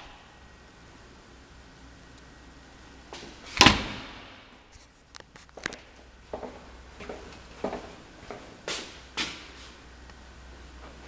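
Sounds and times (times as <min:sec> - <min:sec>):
closet door banging shut: 0:03.5 - 0:04.3.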